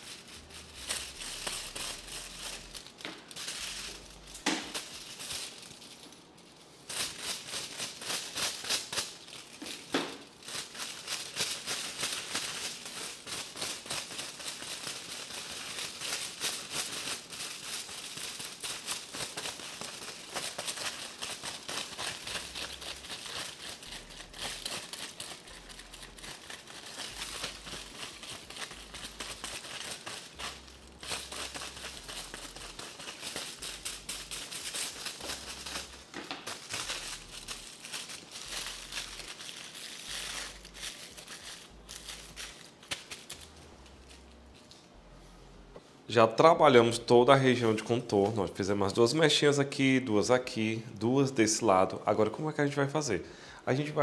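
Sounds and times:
foil crinkling and rustling: 0.0 - 44.7.

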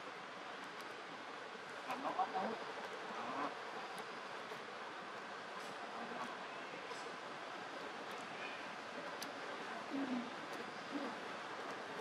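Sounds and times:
faint voice-like sound: 9.6 - 11.3.

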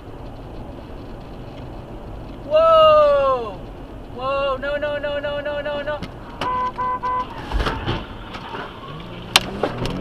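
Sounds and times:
car crash crack: 6.0 - 10.0
car horn honks: 6.4 - 7.4.

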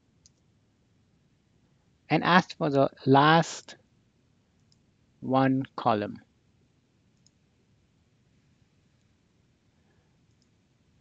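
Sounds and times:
faint click: 7.2 - 7.4, 10.3 - 10.6.

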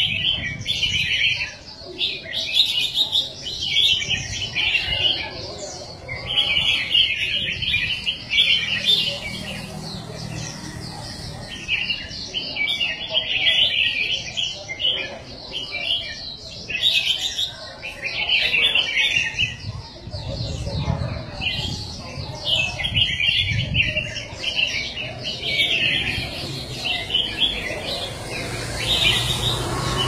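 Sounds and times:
birds chirping: 0.0 - 30.0
faint background voices: 0.0 - 30.0.

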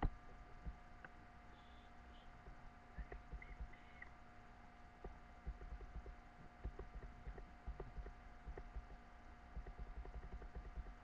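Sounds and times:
electrical hum: 0.0 - 11.0
small squeaks: 1.5 - 4.2
mouse and keyboard clicks: 5.4 - 9.0, 9.6 - 11.0.

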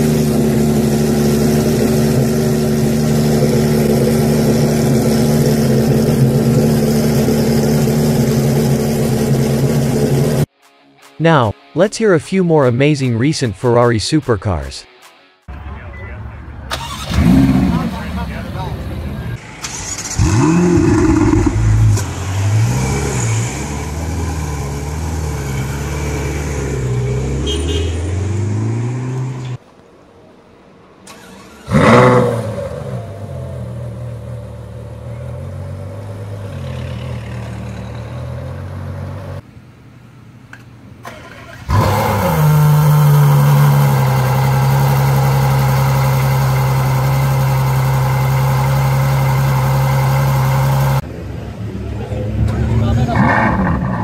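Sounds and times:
car engine idling with revs: 0.0 - 10.5, 41.7 - 51.1
car engine starting and revving: 0.0 - 10.5, 16.7 - 29.6, 31.0 - 39.4, 41.0 - 51.1, 52.2 - 54.0
car engine loud high idle: 42.9 - 51.0.

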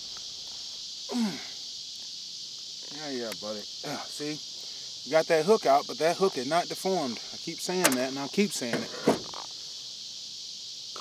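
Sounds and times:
high-pitched insect chorus: 0.0 - 11.0
short thump: 8.6 - 9.4.

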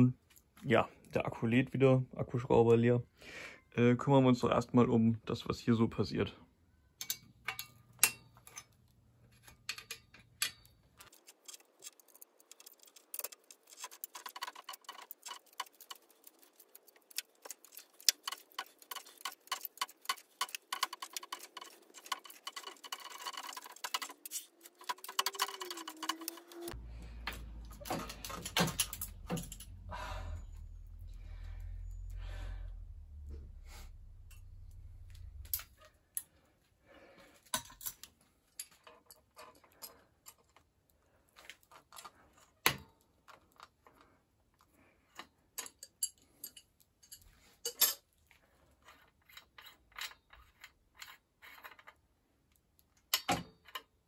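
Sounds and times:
metallic clicks and rattles: 9.4 - 29.9
low rumble: 29.0 - 35.7.

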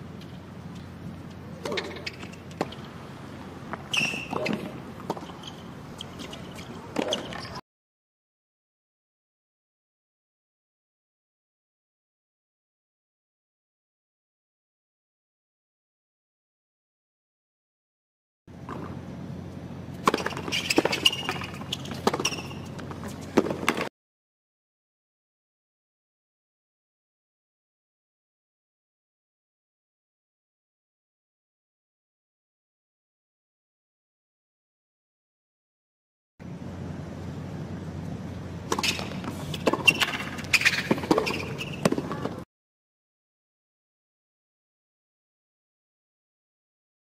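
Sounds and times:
steady low hum: 0.0 - 7.4, 18.5 - 23.9, 36.4 - 42.4
racket hitting tennis ball: 1.6 - 2.8, 3.7 - 7.4, 20.0 - 23.9, 38.7 - 42.4
shoe squeaks: 1.7 - 2.9, 3.8 - 7.6, 20.1 - 23.9, 38.8 - 42.4
ball bouncing: 20.0 - 23.9, 38.7 - 42.4.

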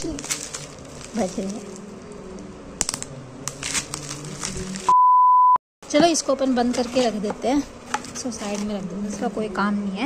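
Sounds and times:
bubble wrap and cardboard crinkling: 0.0 - 4.9, 6.7 - 9.4
high censor beep: 4.9 - 5.6.

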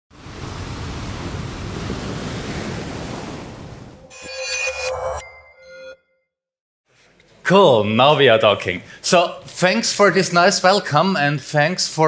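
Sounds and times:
held electronic note: 4.0 - 6.2
electronic chime tones: 4.0 - 6.3.

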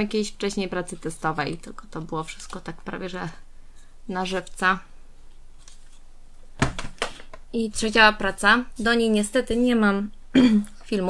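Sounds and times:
low room hiss: 0.0 - 11.0
object set down on table: 6.6 - 7.4.

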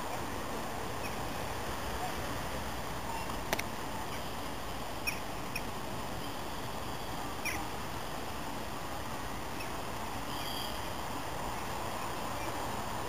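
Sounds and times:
railway station background noise: 0.0 - 13.0.

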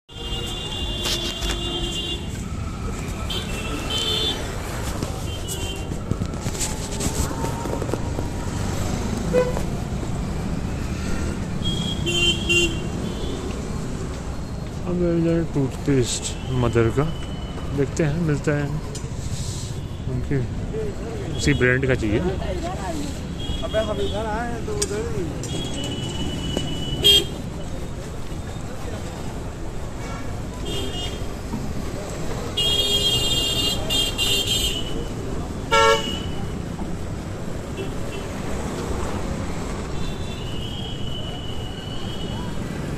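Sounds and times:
traffic rumble: 0.1 - 42.9
vehicle horn toot: 25.5 - 27.3, 35.7 - 36.4.

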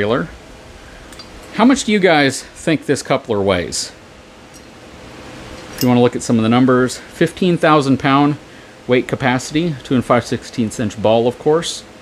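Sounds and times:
man speaking: 0.0 - 0.4, 1.5 - 4.0, 5.8 - 11.9
steady low hiss: 0.0 - 12.0.

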